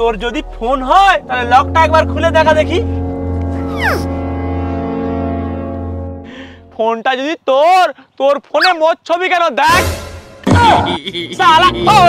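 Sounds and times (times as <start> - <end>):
low comedy horn note: 3.3 - 6.3.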